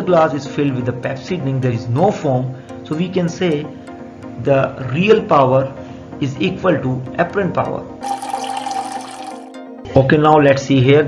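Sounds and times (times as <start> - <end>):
soft background music: 0.0 - 11.0
liquid pouring and fizzing: 8.0 - 9.5.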